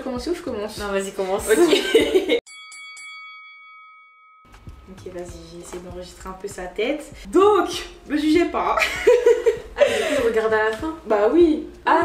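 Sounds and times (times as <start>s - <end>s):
bell-like ding: 2.4s - 6.0s.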